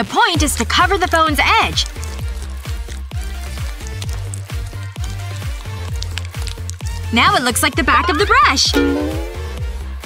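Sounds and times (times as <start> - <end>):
music with drum beat and bass: 0.4 - 10.0.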